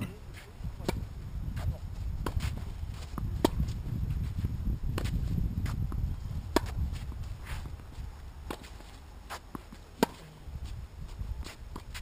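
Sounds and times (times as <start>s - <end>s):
wind rumble on microphone: 0.0s - 8.5s, 10.4s - 12.0s
tennis ball bouncing on court: 0.8s - 3.8s, 4.9s - 10.3s
tennis ball struck by racket: 0.8s - 3.8s, 4.9s - 7.8s, 8.4s - 10.4s.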